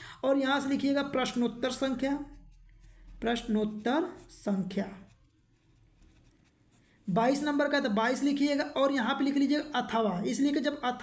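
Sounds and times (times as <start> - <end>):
pen scratching on paper: 0.5 - 7.8.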